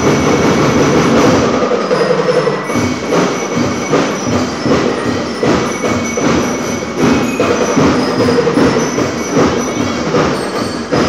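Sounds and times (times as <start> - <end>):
marching band playing: 0.0 - 11.0
ringing metallic notes: 0.0 - 11.0
steady drum beat: 0.0 - 11.0.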